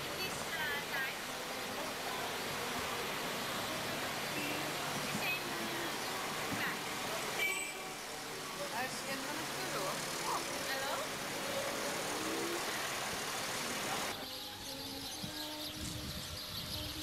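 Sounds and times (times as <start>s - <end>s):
traffic running: 0.0s - 14.3s.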